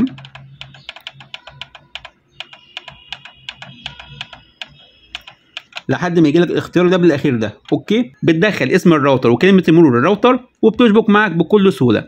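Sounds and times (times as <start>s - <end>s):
rapid button clicking: 0.0s - 6.0s.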